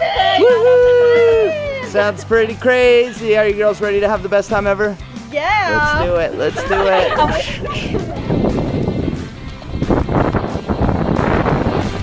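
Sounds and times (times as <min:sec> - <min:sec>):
wind buffeting microphone: 0:05.7 - 0:12.0.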